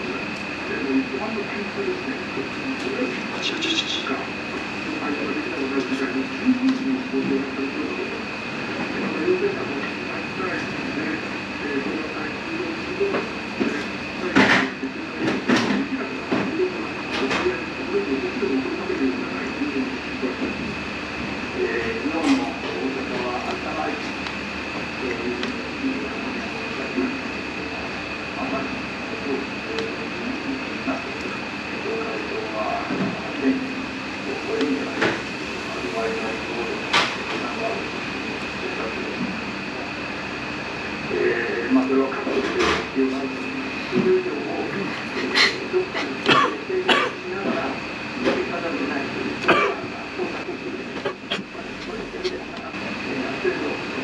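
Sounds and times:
faint muffled voices: 0:00.0 - 0:54.0
high whine: 0:00.0 - 0:54.0
muffled television speech: 0:00.0 - 0:54.0
room hum: 0:00.0 - 0:54.0.

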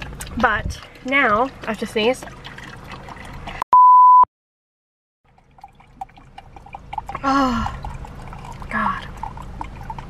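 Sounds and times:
high censor bleep: 0:03.7 - 0:04.3.

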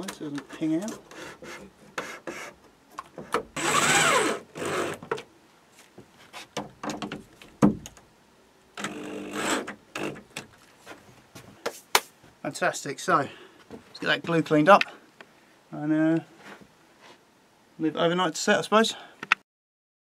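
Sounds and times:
electric drill driving screws: 0:03.5 - 0:05.1, 0:08.8 - 0:10.2.

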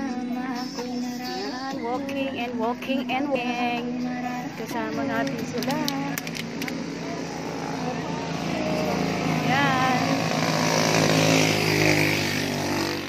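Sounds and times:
motorcycle engine running: 0:00.0 - 0:13.0
person's voice: 0:01.6 - 0:07.2, 0:07.8 - 0:10.2.

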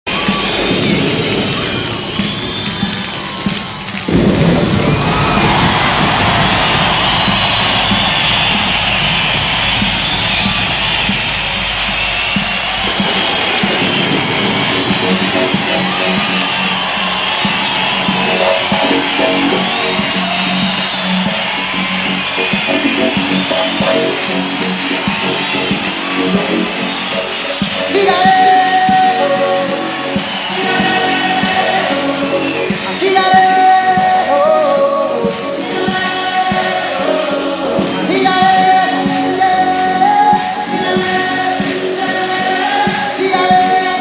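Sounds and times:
crowd cheering: 0:00.0 - 0:44.0
low band chords: 0:00.2 - 0:42.2
hand claps in time: 0:00.2 - 0:43.8.

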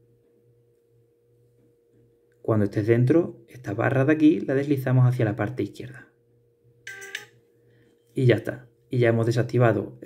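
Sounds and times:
faint steady hum: 0:00.0 - 0:10.0
phone chime: 0:06.9 - 0:07.4.

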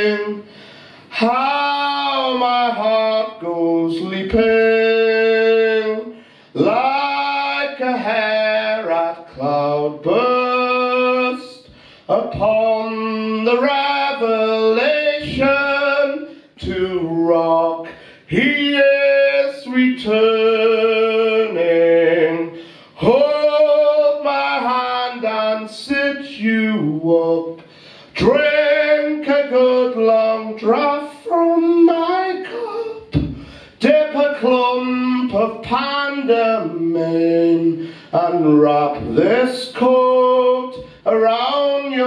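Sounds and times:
man singing a cappella: 0:00.0 - 0:42.0
singer breaths: 0:00.4 - 0:01.1, 0:06.1 - 0:06.6, 0:11.6 - 0:12.1, 0:17.9 - 0:18.3, 0:22.6 - 0:23.0, 0:27.6 - 0:28.2, 0:33.3 - 0:33.8, 0:37.8 - 0:38.2.

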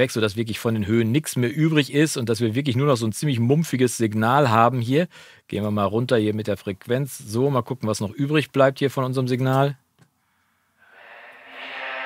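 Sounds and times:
muffled vocal echoes: 0:10.9 - 0:12.0.

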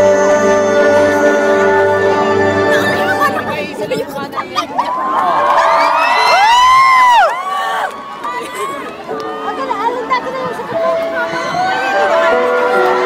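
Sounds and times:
crowd cheering and screaming: 0:02.1 - 0:13.0.

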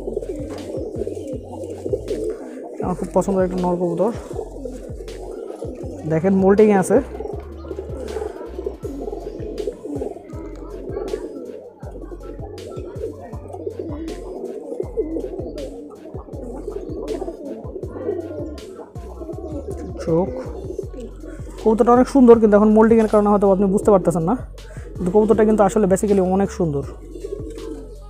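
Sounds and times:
pigeons cooing: 0:00.0 - 0:28.0.

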